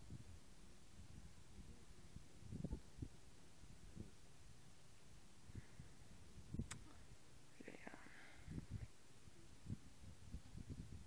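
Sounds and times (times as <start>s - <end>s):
faint whisper-like sound: 5.4s - 10.9s.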